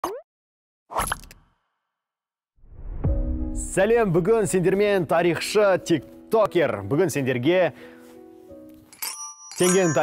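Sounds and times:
short deep hit: 0:02.6 - 0:04.2.

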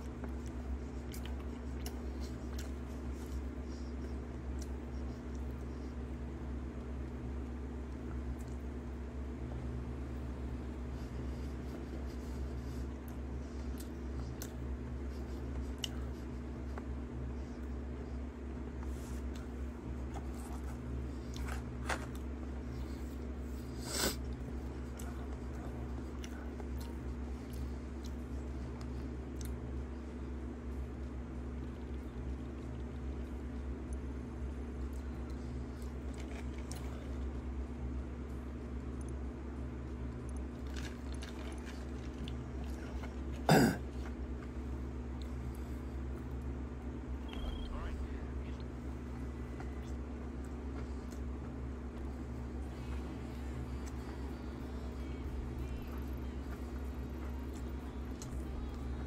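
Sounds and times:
man chewing food: 0:00.0 - 0:59.0
steady low hum: 0:00.0 - 0:59.0.

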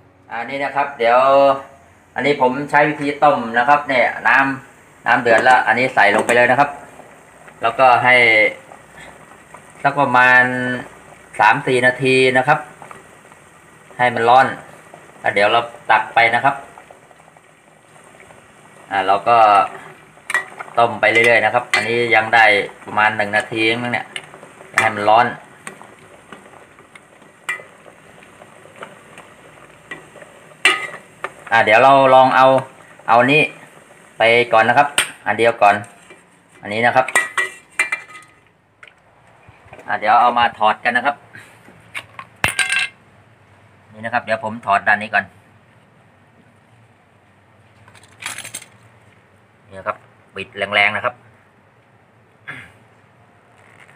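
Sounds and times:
water boiling in metal pot: 0:00.5 - 0:39.0, 0:53.4 - 0:53.9
metal spoon on concrete floor: 0:30.7 - 0:31.0, 0:37.1 - 0:38.4, 0:42.0 - 0:43.0.

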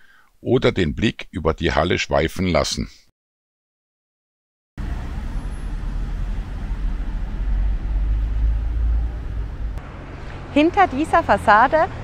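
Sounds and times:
city street traffic rumble: 0:04.8 - 0:12.0.

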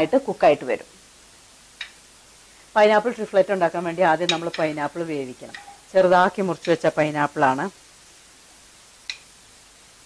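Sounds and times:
woman speaking: 0:00.0 - 0:00.9, 0:02.8 - 0:07.7.

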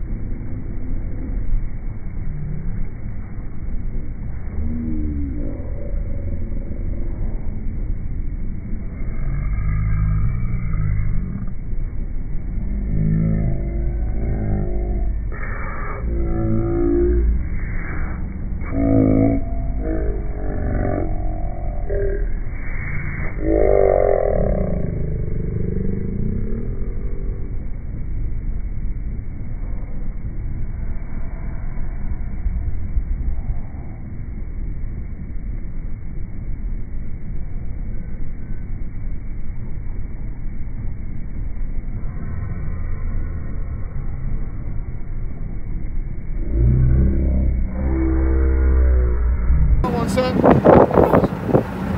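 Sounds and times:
drawn-out pitched sound: 0:00.0 - 0:28.4, 0:41.9 - 0:51.9
faint falling tone: 0:00.0 - 0:51.9
slowed boat engine rumble: 0:00.0 - 0:51.9.

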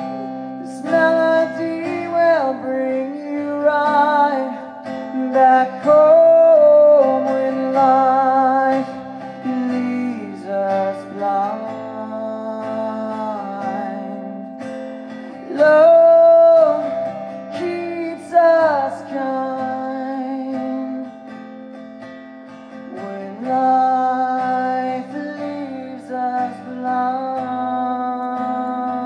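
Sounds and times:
man singing: 0:00.0 - 0:21.4, 0:22.7 - 0:29.0
strummed acoustic guitar: 0:00.0 - 0:29.0.

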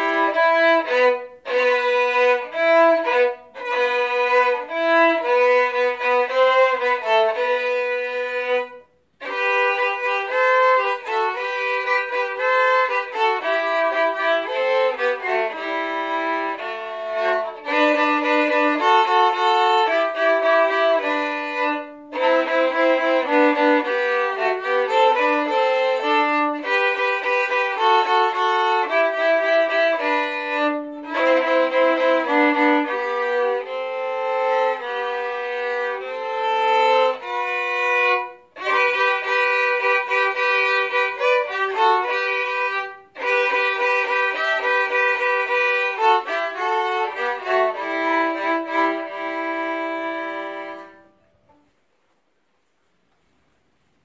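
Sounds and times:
violin duet: 0:00.0 - 0:51.6.

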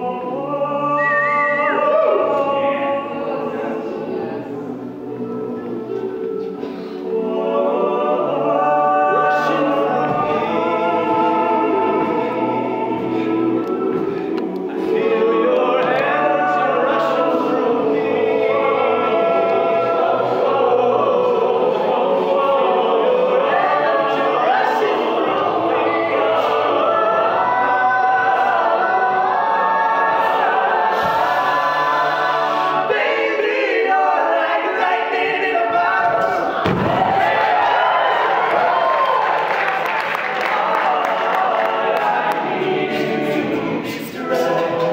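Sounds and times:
male a cappella group singing: 0:00.0 - 0:44.9
low thud: 0:36.6 - 0:37.3.

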